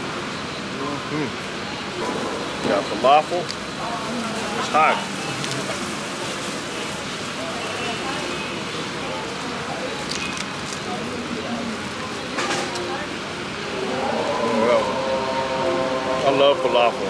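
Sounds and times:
street background hiss: 0.0 - 17.0
faint voices: 0.8 - 17.0.

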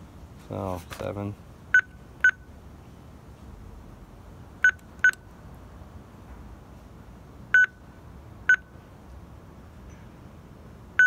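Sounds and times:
keypad beeps: 1.8 - 2.5, 4.6 - 5.2, 7.6 - 7.8.

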